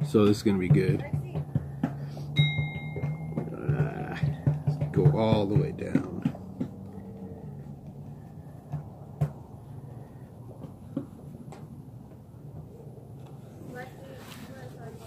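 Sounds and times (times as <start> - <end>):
low background hum: 0.0 - 15.0.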